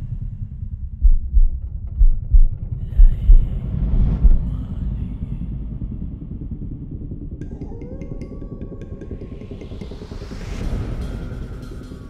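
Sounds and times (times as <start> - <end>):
low rumble: 0.0 - 12.0
deep bass thumps: 0.8 - 4.6.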